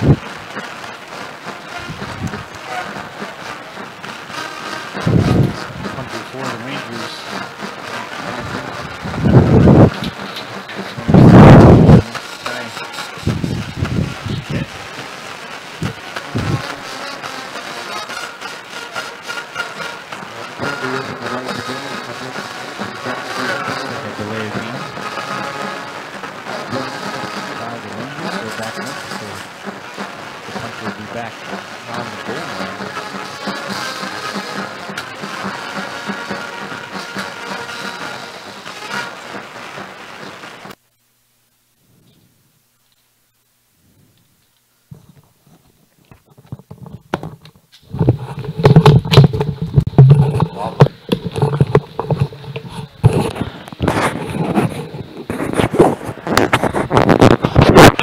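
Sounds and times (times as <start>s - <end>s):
wind buffeting microphone: 0.0s - 0.6s, 1.7s - 3.2s, 5.0s - 6.2s, 8.1s - 12.3s, 13.0s - 15.0s, 15.7s - 16.8s, 47.9s - 58.0s
crowd of voices: 0.0s - 40.2s.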